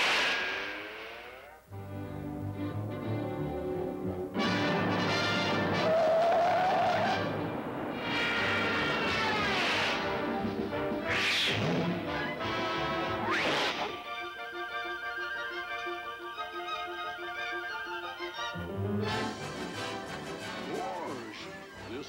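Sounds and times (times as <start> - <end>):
loud crashes: 0.0 - 1.6
orchestral cartoon music: 0.0 - 22.0.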